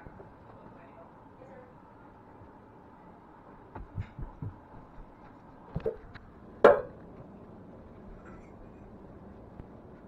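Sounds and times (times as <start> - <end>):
dull low handling thumps: 3.7 - 5.2.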